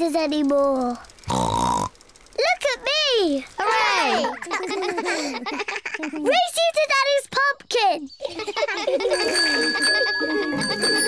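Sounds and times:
children laughing: 0:03.6 - 0:06.7, 0:08.2 - 0:11.0
bicycle bell ringing: 0:09.0 - 0:11.0.

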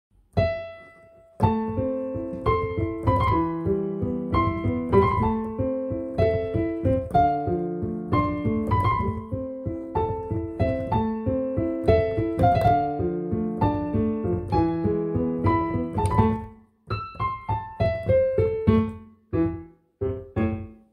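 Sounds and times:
piano notes and chords: 0:00.1 - 0:20.9.

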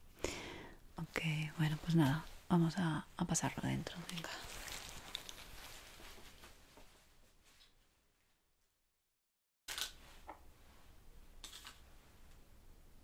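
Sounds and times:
small items rustling: 0:03.9 - 0:07.8.

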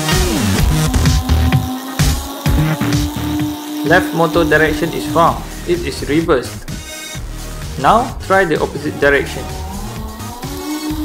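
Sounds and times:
electronic music with pulsing bass: 0:00.0 - 0:11.0.

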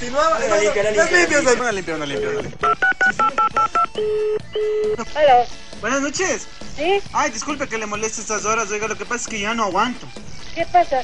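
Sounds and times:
telephone ringback tones: 0:02.1 - 0:05.1
telephone dialing beeps: 0:02.2 - 0:05.0.

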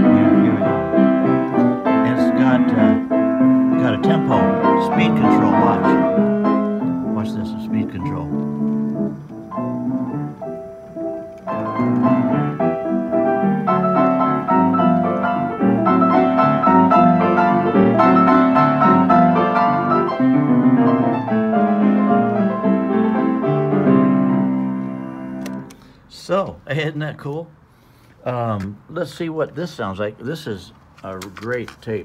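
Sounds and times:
player piano playing lively tune: 0:00.0 - 0:25.7.

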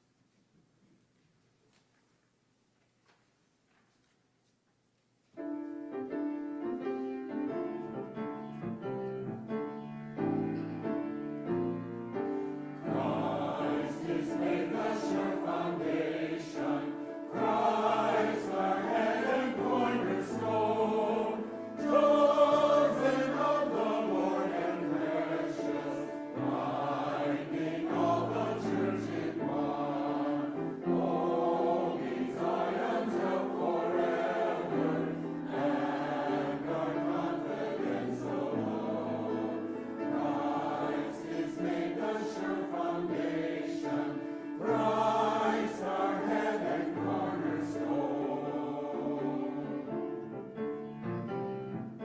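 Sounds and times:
mixed choir singing: 0:11.6 - 0:50.6.

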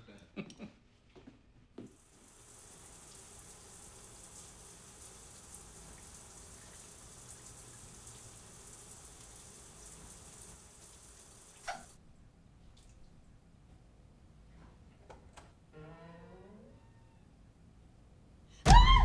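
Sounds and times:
shower spray on tile: 0:01.9 - 0:12.0
shower valve turning: 0:01.9 - 0:12.0.

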